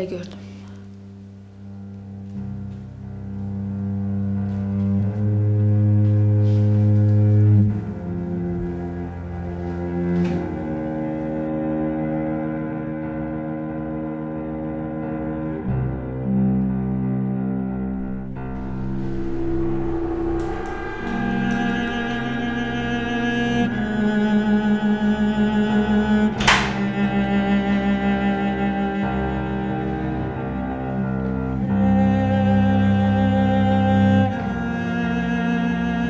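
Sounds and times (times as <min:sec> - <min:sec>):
slow low string notes: 0:00.0 - 0:36.0.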